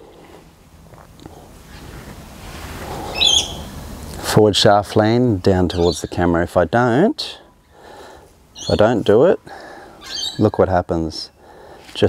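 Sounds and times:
faint background hiss: 0.0s - 12.0s
bird chirping: 3.0s - 3.8s, 5.7s - 6.4s, 8.5s - 9.1s, 10.0s - 10.6s.

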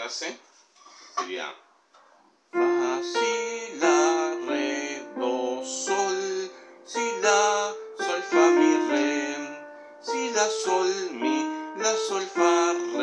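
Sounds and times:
electronic keyboard hymn melody: 2.5s - 13.0s.

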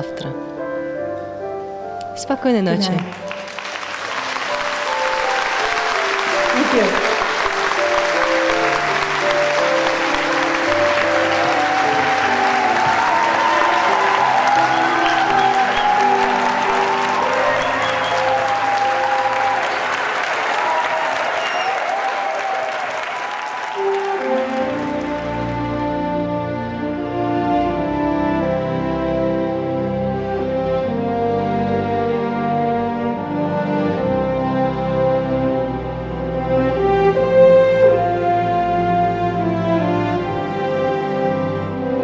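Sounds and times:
music with long held notes: 0.0s - 42.0s
audience applauding: 2.8s - 26.4s.

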